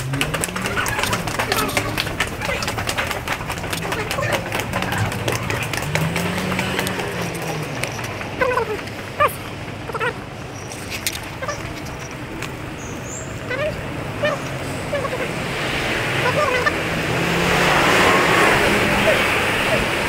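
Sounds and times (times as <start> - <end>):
city traffic noise: 0.0 - 20.0.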